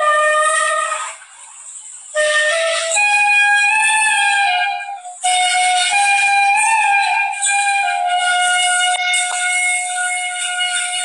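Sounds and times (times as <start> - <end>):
bamboo flute note: 0.0 - 1.2, 2.1 - 11.0.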